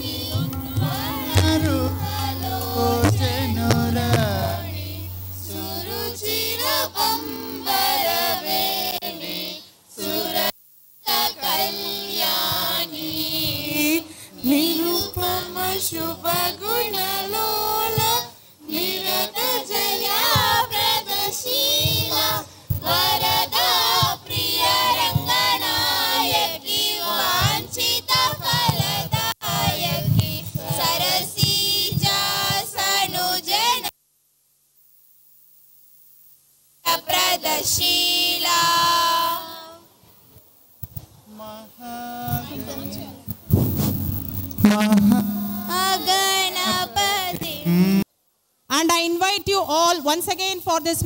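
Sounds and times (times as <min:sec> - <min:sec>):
children singing: 0:00.0 - 0:10.5, 0:44.6 - 0:48.0.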